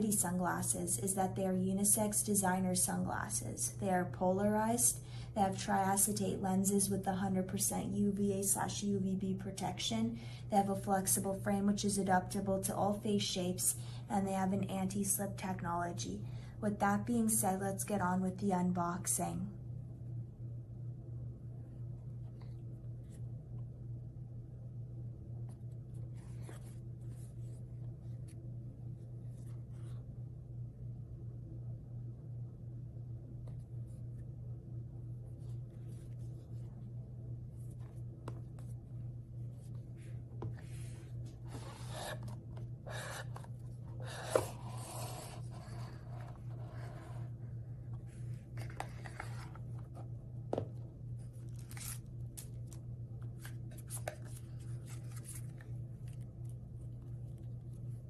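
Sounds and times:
steady low hum: 0.0 - 58.0
paper sheets rustling: 51.4 - 56.2.

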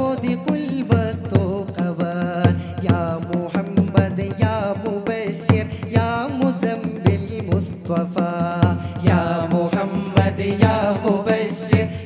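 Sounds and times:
steady percussion beat: 0.0 - 12.0
group of voices singing: 8.2 - 12.0.

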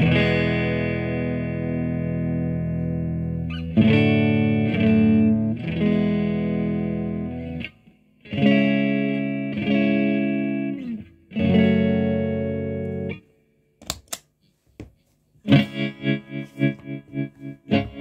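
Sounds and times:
clean electric guitar strumming chords: 0.0 - 13.2, 15.4 - 18.0.

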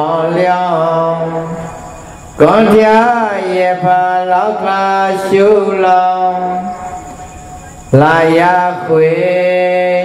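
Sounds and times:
man chanting: 0.0 - 7.1, 7.9 - 10.0.

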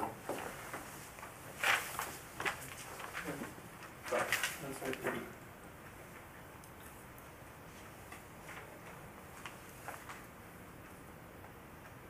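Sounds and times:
papers clicking and rustling: 0.3 - 5.2.

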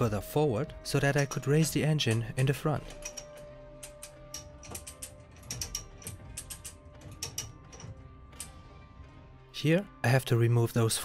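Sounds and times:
chain hoist pawl clicking: 2.9 - 8.5.

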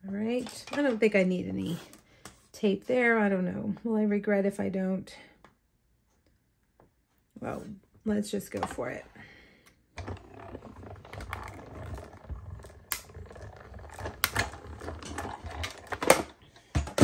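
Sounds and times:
die-cutting machine rumbling: 10.0 - 16.2.

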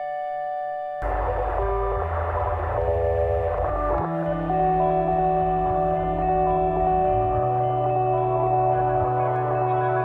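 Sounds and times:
rock band music: 1.0 - 10.0.

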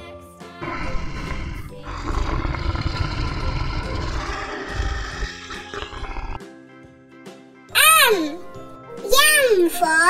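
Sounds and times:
children's music: 0.0 - 10.0
lion roaring: 0.6 - 6.4.

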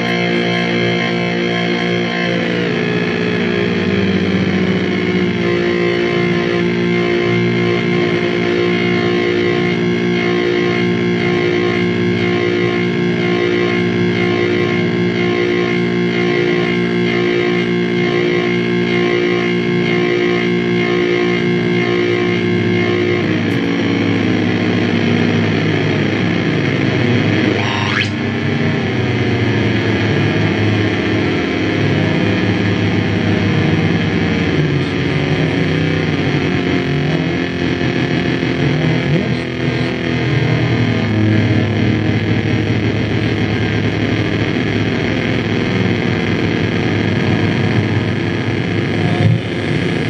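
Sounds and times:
harsh noise music drone: 0.0 - 50.0
rising electronic sweep: 0.0 - 50.0.

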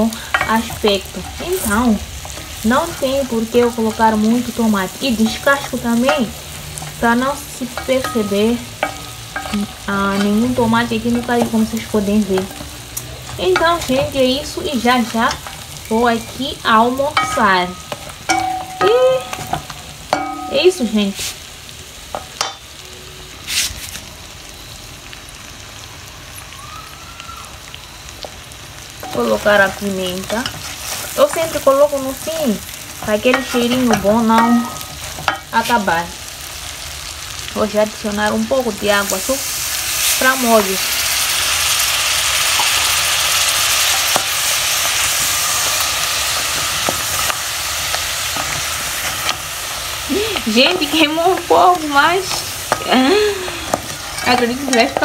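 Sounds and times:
curry sizzling in a metal pot: 0.0 - 55.0
wooden spoon scraping a pot: 53.7 - 55.0.

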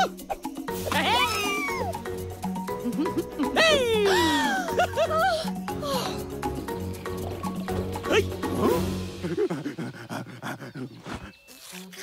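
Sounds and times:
light background music: 0.0 - 10.6.

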